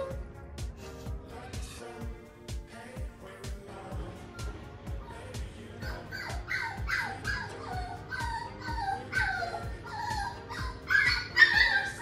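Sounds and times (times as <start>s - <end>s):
puppy whining: 0.0s - 0.2s, 4.3s - 12.0s
background music with steady beat: 0.0s - 12.0s.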